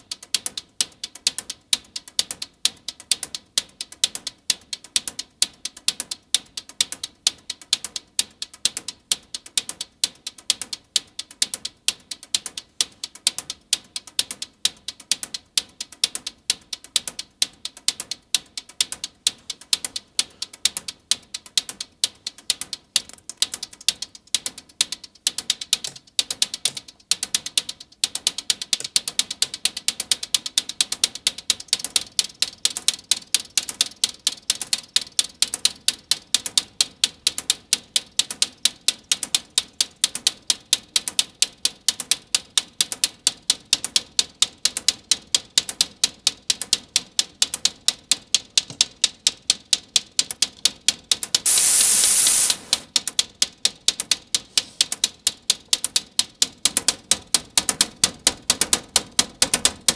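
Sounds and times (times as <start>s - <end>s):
synthesized hi-hat ticks: 0.0s - 59.9s
burst of synth hiss: 51.5s - 52.8s.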